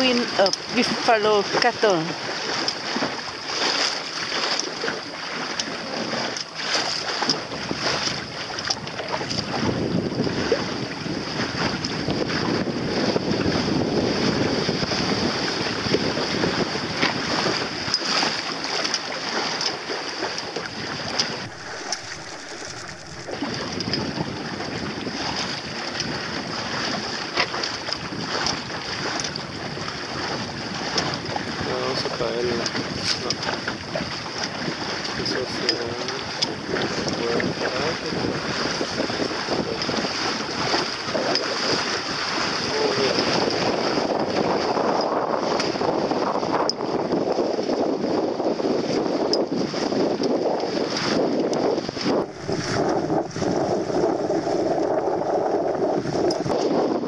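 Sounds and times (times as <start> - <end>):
water slapping boat hull: 0.0 - 57.0
wind buffeting microphone: 0.0 - 57.0.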